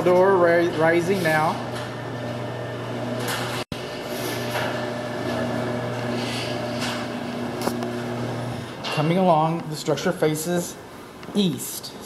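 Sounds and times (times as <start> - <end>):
garage door opener motor humming: 0.0 - 8.9.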